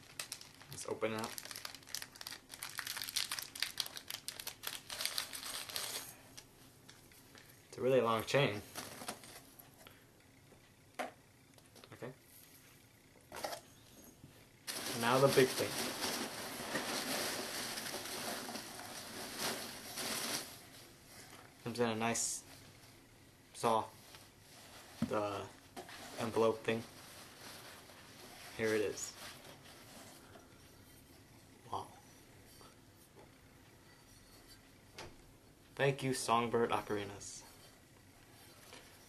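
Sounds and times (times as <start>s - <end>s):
foam packing peanuts rustling: 0.0s - 6.2s, 14.7s - 21.0s, 24.4s - 30.3s
plastic bag crinkling: 0.0s - 6.4s, 14.7s - 20.8s.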